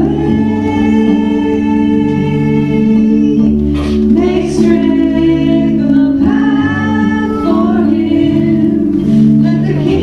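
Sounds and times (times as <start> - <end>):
sustained keyboard chords: 0.0 - 10.0
voices singing together: 0.0 - 10.0.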